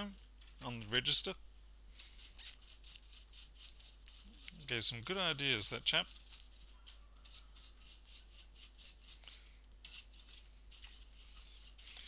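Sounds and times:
small brush scrubbing: 0:01.9 - 0:12.0.

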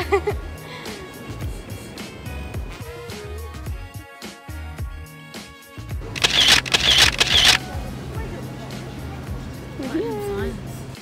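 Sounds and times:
background music: 0:00.0 - 0:11.0
camera shutter sound effects: 0:06.2 - 0:07.6.

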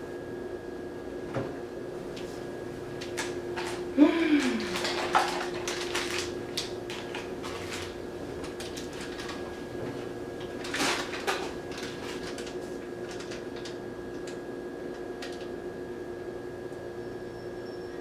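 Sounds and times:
steady low hum: 0:00.0 - 0:18.0
paper packet rustling: 0:04.5 - 0:09.7, 0:10.4 - 0:14.4.

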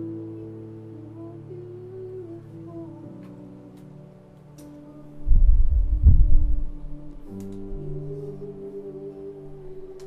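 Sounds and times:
keyboard pad chord: 0:00.0 - 0:10.0
deep rumbling throb: 0:05.3 - 0:06.8.

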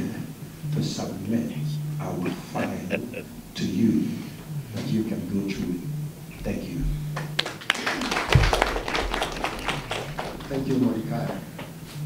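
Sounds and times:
people clapping: 0:06.8 - 0:11.8.

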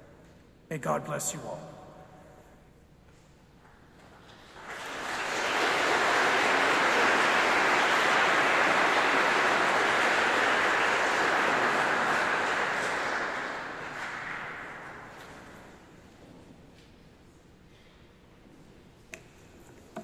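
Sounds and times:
audience applauding: 0:04.0 - 0:15.8.

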